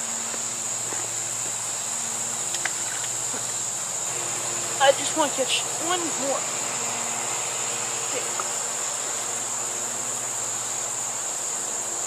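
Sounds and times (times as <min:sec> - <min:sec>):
crickets chirring: 0:00.0 - 0:12.0
faint ticks: 0:02.5 - 0:03.2.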